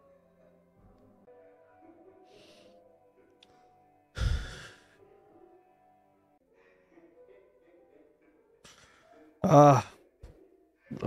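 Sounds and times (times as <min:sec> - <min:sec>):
faint background music: 0:00.0 - 0:11.0
man sighing: 0:04.2 - 0:04.8.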